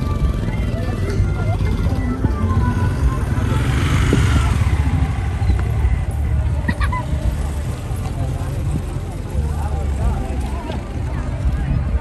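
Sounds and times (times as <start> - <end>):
quiet music: 0.0 - 12.0
vehicle road and engine rumble: 0.0 - 12.0.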